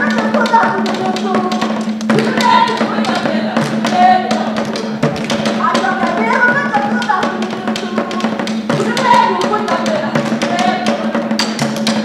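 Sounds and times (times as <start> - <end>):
drum ensemble beating fast rhythm: 0.0 - 12.0
voices singing: 0.0 - 12.0.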